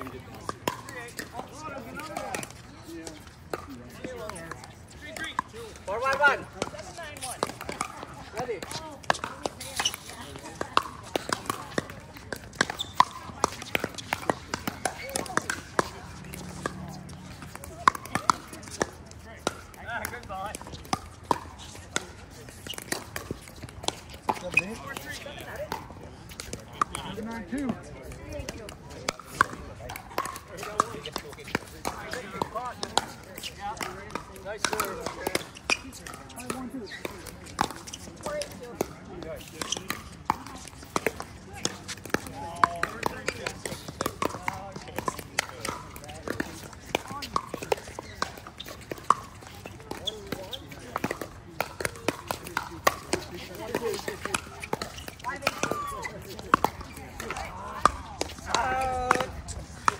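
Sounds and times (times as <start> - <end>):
paddles hitting plastic ball: 0.0 - 59.9.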